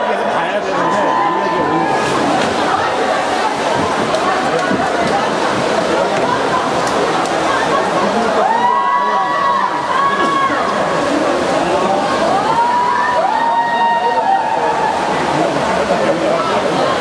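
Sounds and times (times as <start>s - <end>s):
echoing crowd noise: 0.0s - 17.0s
spectators yelling cheers: 0.6s - 2.4s, 8.3s - 10.8s, 12.2s - 15.4s
water splashing: 1.4s - 17.0s.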